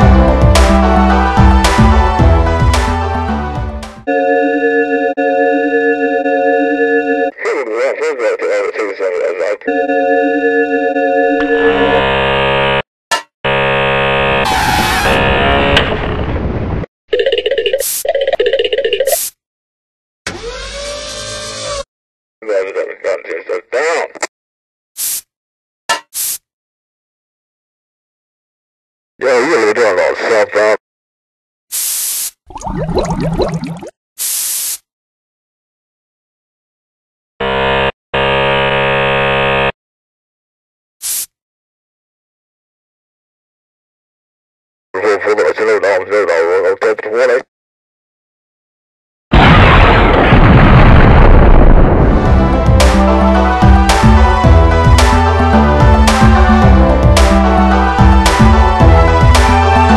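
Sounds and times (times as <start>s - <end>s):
loud buzzy pitched tone: 11.6s - 12.8s, 13.4s - 16.1s, 37.4s - 39.8s
burst of hiss: 31.7s - 32.4s, 34.2s - 34.8s, 41.0s - 41.3s.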